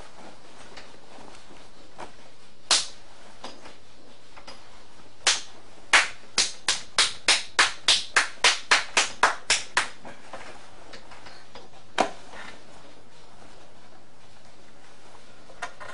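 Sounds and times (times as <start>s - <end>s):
sharp hand claps: 2.7s - 3.0s, 5.2s - 10.0s.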